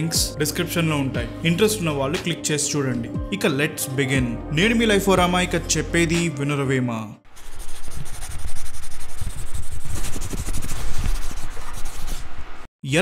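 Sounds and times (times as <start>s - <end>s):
scratchy rubbing: 7.3s - 12.6s.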